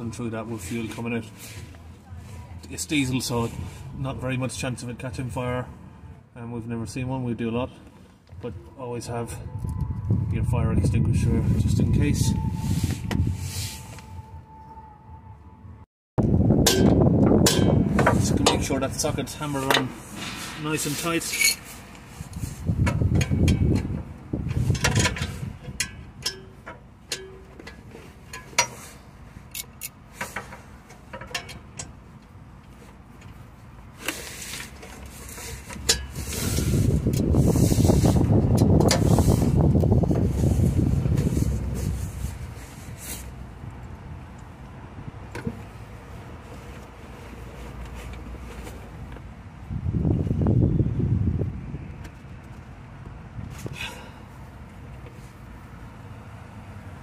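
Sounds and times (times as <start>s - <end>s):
loud low rumble: 8.5s - 18.1s.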